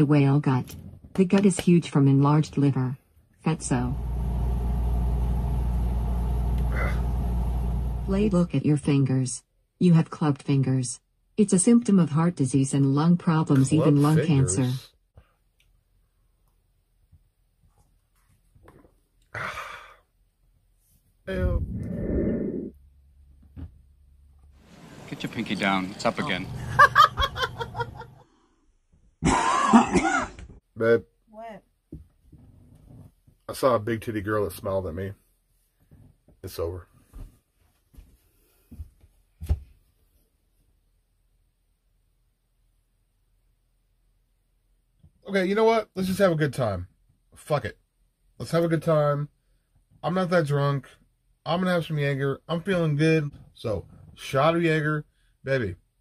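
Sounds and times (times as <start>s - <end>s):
low engine-like rumble: 3.9s - 8.4s
man clearing his throat: 29.2s - 30.4s.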